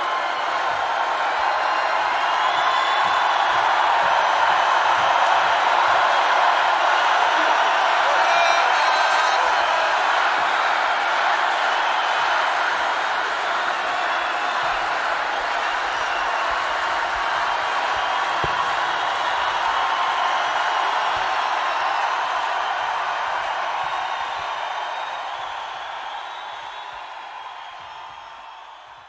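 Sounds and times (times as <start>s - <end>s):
crowd cheering and applauding: 0.0s - 29.0s.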